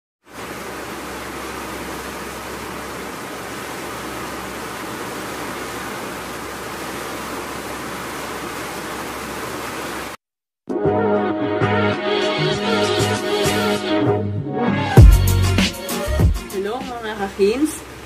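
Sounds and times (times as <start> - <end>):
heavy rain pouring: 0.2 - 10.2, 15.0 - 18.0.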